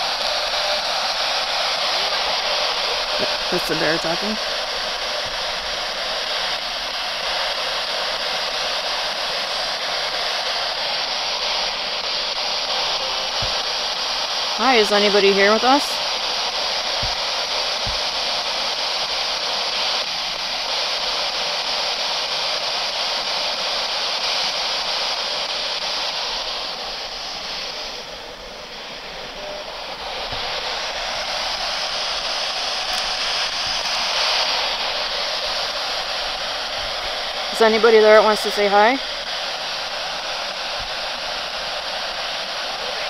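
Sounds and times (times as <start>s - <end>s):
radio static hiss: 0.0s - 43.0s.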